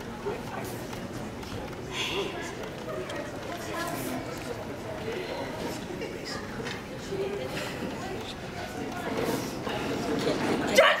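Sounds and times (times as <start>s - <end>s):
murmur of voices in a hall: 0.0s - 11.0s.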